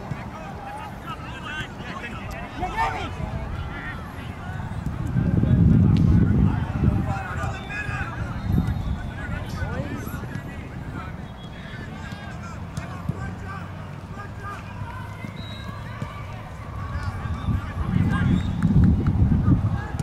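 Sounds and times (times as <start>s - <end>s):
wind rumble on microphone: 2.9s - 11.2s, 16.2s - 20.0s
distant calls and shouts: 6.5s - 18.8s.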